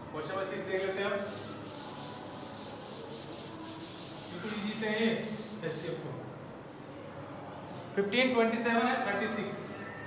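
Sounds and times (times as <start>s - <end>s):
duster rubbing on chalkboard: 1.1s - 6.0s.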